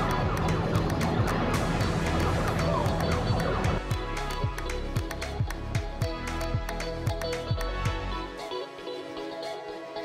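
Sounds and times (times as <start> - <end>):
quiet music: 0.0 - 10.0.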